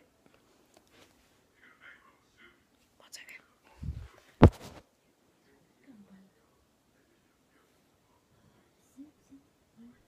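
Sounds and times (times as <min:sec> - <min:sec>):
faint whispering: 0:01.5 - 0:04.4, 0:05.4 - 0:10.0.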